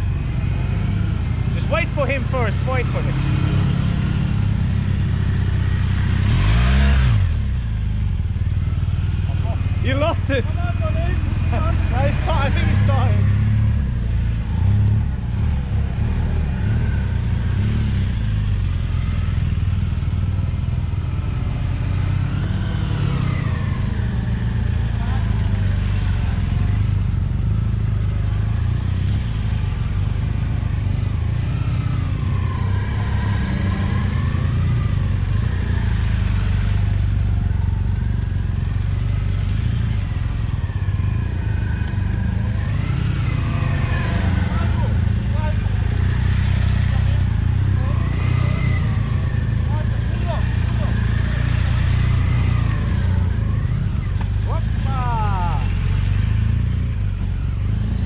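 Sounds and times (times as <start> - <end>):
motorcycle engines rumbling: 0.0 - 58.0.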